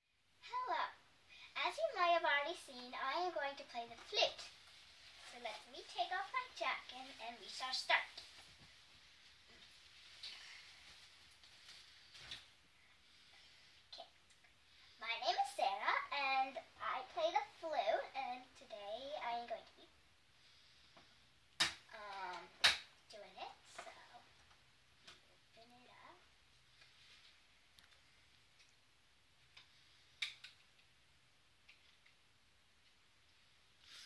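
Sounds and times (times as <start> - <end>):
girl talking: 0.4 - 4.6, 5.2 - 8.3, 15.0 - 20.0, 21.9 - 24.3, 25.6 - 26.3.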